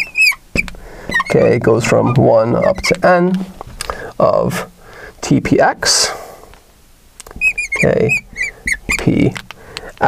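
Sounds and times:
marker squeaking on glass: 0:00.0 - 0:03.6, 0:07.3 - 0:09.4.

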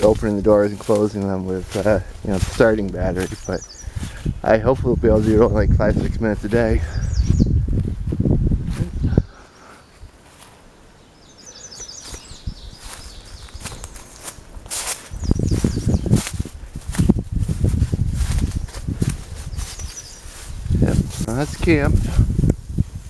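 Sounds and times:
footsteps in woods: 0:00.0 - 0:23.0
low rumbling noise: 0:01.4 - 0:09.4
songbird trilling: 0:02.4 - 0:04.5, 0:06.9 - 0:07.6, 0:11.0 - 0:14.4, 0:15.1 - 0:16.4, 0:19.5 - 0:20.8.

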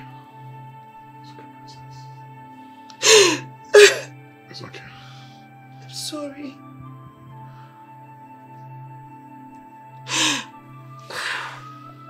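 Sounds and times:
soft background music: 0:00.0 - 0:12.0
woman sobbing: 0:03.0 - 0:04.1.

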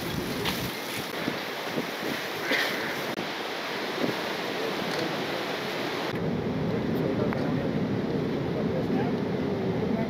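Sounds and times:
wind on microphone: 0:00.0 - 0:04.9
sea surf: 0:00.0 - 0:10.0.

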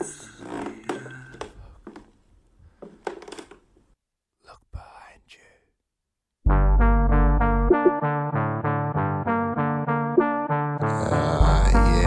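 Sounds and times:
faint whispering: 0:00.0 - 0:01.8, 0:04.4 - 0:05.8.

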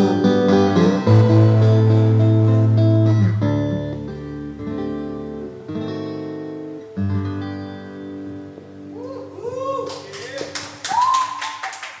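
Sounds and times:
acoustic guitar chord: 0:00.0 - 0:08.9
hand clapping: 0:09.8 - 0:12.0.

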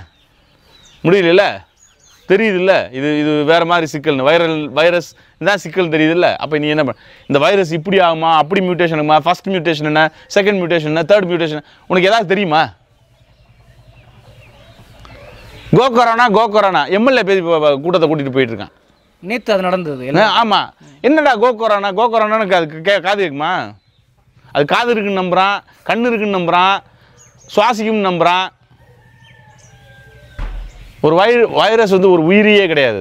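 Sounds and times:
distant bird chirps: 0:00.0 - 0:33.0
long bird call: 0:12.7 - 0:16.4
short low thump: 0:30.3 - 0:31.0.

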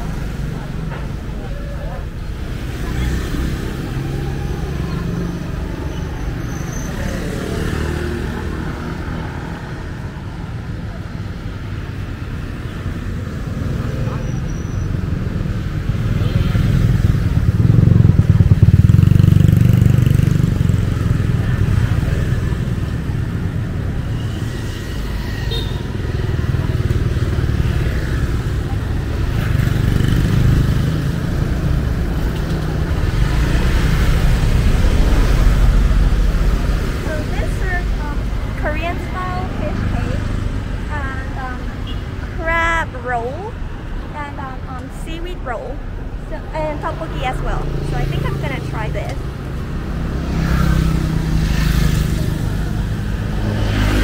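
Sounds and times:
people's voices: 0:00.0 - 0:12.0, 0:26.4 - 0:49.4
motorcycles passing: 0:00.0 - 0:54.0.

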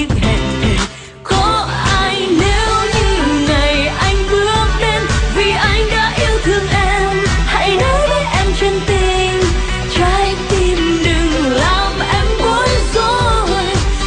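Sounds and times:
pop band with bass and beat: 0:00.0 - 0:14.0
woman singing: 0:00.0 - 0:14.0.

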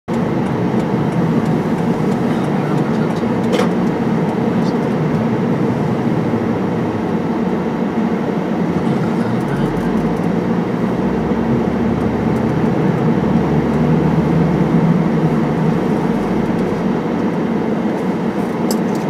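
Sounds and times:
car engine and tyre hum: 0:00.0 - 0:19.0.

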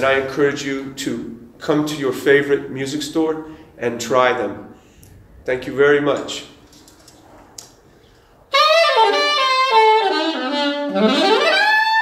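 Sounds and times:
saxophone playing jazz phrase: 0:08.5 - 0:12.0.

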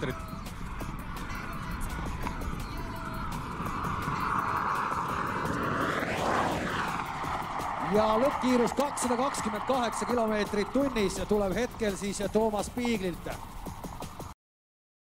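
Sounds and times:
car passing at high speed: 0:00.0 - 0:14.3.

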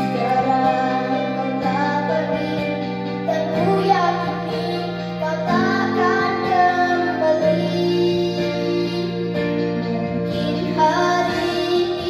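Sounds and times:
backing music with low chords: 0:00.0 - 0:12.0
girl singing into a microphone: 0:00.0 - 0:12.0.

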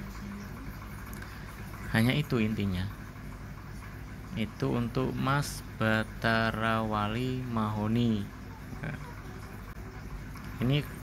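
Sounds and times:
low background hum: 0:00.0 - 0:11.0
man talking: 0:04.3 - 0:09.1.

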